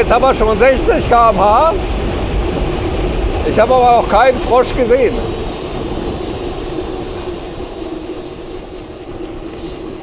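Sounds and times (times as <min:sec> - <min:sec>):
constant low hum: 0:00.0 - 0:10.0
wind rushing over microphone: 0:00.0 - 0:10.0.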